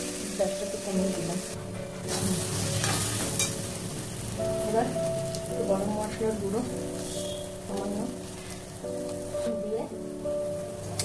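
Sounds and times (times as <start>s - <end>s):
food sizzling in pan: 0.0s - 11.0s
metal spatula scraping pan: 2.0s - 3.6s.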